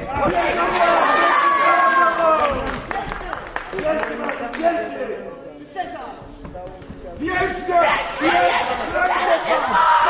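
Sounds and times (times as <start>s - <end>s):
spectators shouting: 7.9s - 10.0s.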